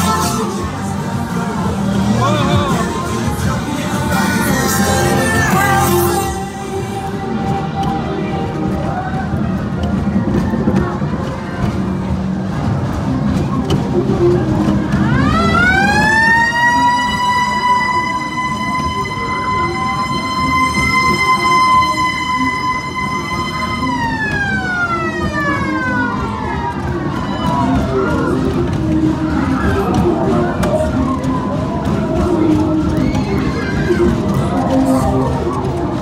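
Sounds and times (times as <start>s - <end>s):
crowd murmur: 0.0s - 36.0s.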